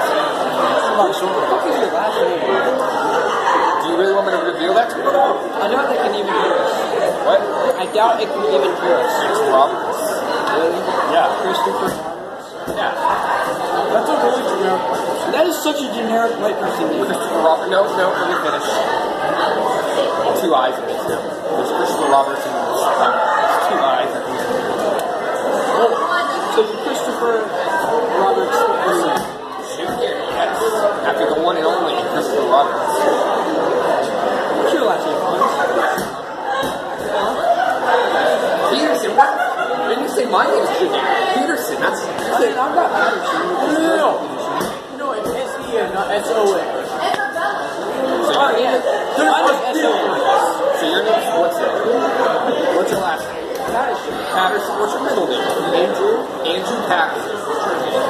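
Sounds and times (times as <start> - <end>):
overlapping chatter of voices: 0.0 - 58.0.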